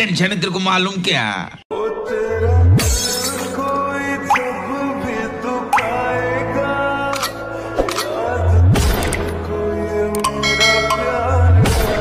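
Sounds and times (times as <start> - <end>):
background music: 1.7 - 12.0.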